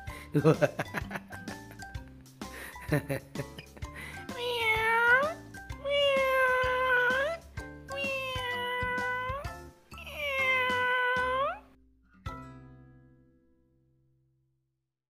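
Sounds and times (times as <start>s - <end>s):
background music: 0.0s - 13.5s
cat meowing: 4.2s - 11.6s.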